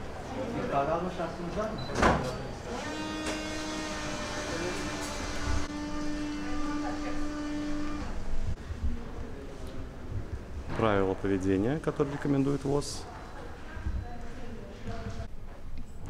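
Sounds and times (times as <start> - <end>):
buzzy machine hum: 2.6 - 8.6.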